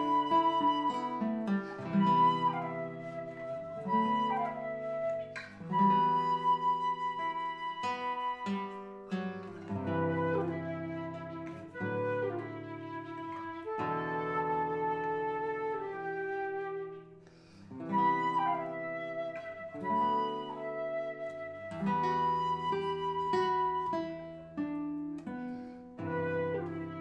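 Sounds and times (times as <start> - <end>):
classical guitar: 0.0 - 27.0
flute melody: 0.0 - 27.0.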